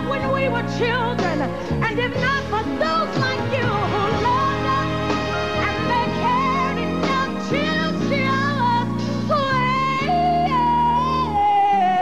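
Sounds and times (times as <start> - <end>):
sustained backing chords: 0.0 - 11.5.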